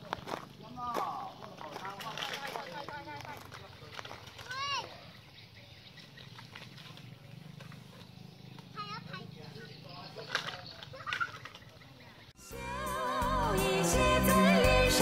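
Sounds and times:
background music with singing: 0:12.4 - 0:15.0.

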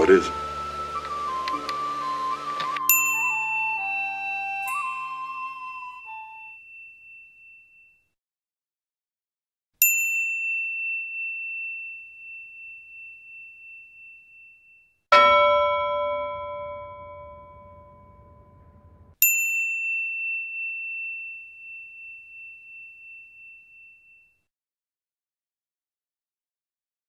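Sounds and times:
high bell ding: 0:02.9 - 0:03.4, 0:04.7 - 0:08.1, 0:09.8 - 0:24.5
lower bell tone: 0:02.9 - 0:08.2, 0:09.9 - 0:24.5.

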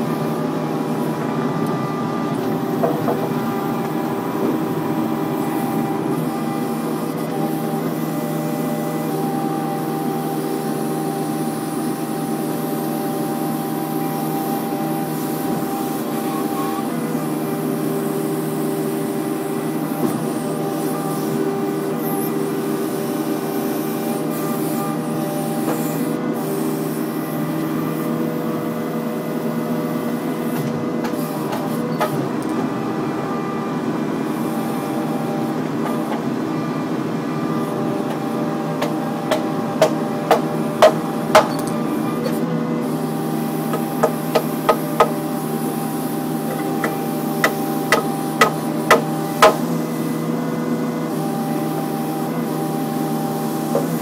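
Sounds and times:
excavator diesel engine: 0:00.0 - 0:54.0.

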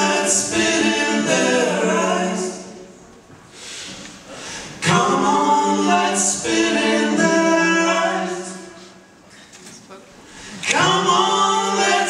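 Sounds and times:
group singing unaccompanied: 0:00.0 - 0:03.0, 0:04.6 - 0:09.2, 0:10.5 - 0:12.0.

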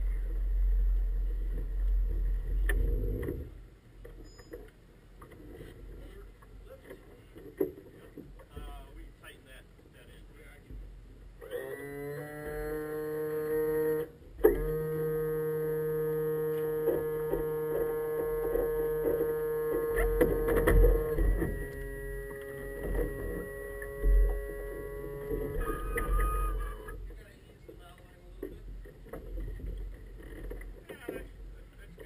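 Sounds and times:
machine hum: 0:00.0 - 0:32.0.

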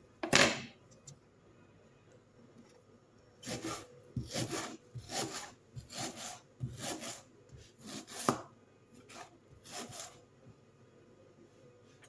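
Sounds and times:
knife slicing onion: 0:03.4 - 0:10.2.

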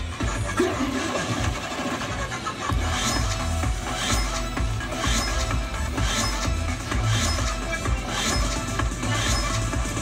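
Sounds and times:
slot machine bonus music: 0:00.0 - 0:10.0
slot machine sound effects: 0:00.0 - 0:10.0.

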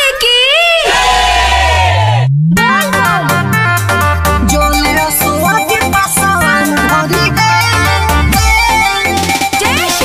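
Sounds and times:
crowd shouting together: 0:00.7 - 0:02.3
low electronic tone rising: 0:01.3 - 0:09.0.

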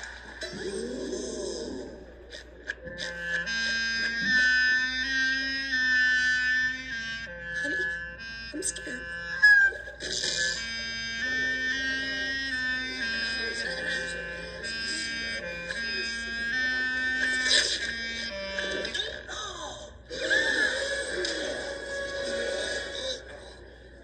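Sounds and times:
clarinet playing slow melody: 0:02.8 - 0:19.0.

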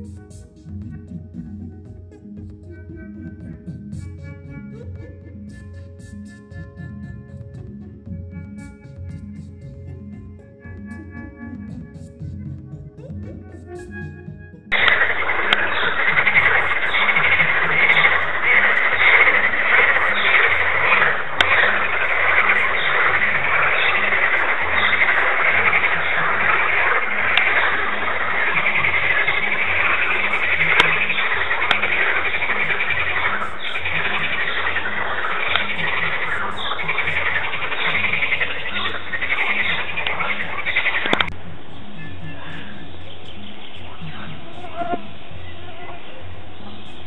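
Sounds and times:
chorus of frogs calling: 0:14.7 - 0:47.0.

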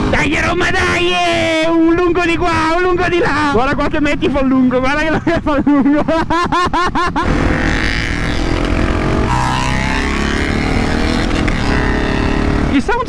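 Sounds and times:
person laughing: 0:05.0 - 0:07.6
motorcycle engine revving: 0:07.2 - 0:13.0.

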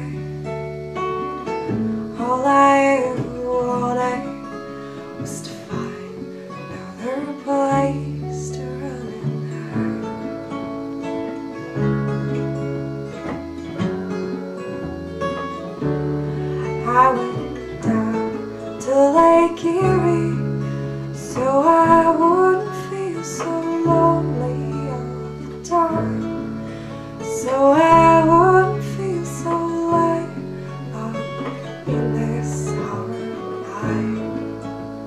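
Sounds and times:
bass guitar notes: 0:00.0 - 0:35.0
keyboard chords: 0:00.0 - 0:35.0
strummed acoustic guitar: 0:00.0 - 0:35.0.

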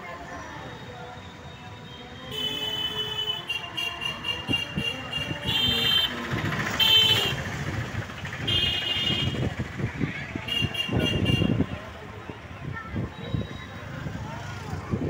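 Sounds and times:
low traffic rumble: 0:00.0 - 0:15.0
vehicle horn honks: 0:01.8 - 0:06.2, 0:06.8 - 0:07.5, 0:08.4 - 0:09.4, 0:10.4 - 0:11.8.

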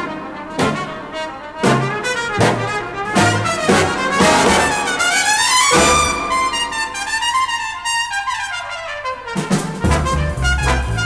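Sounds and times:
bass and rhythm section swinging: 0:00.0 - 0:11.0
big band jazz brass: 0:00.0 - 0:11.0.

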